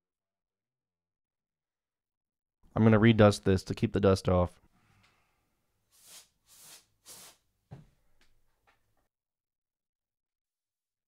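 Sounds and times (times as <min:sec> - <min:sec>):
compressed air bursts: 0:06.0 - 0:07.4.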